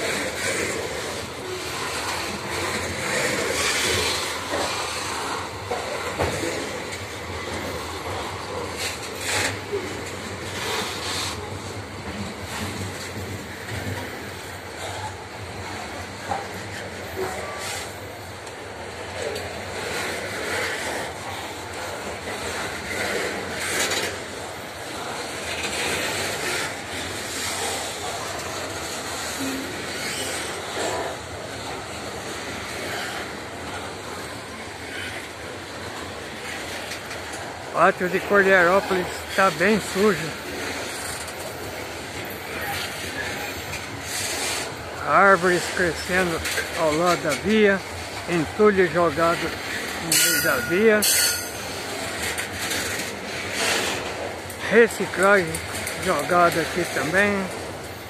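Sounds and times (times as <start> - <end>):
steel wheels rumbling on rail: 0.0 - 58.0
wagons clanking and knocking: 45.1 - 57.6.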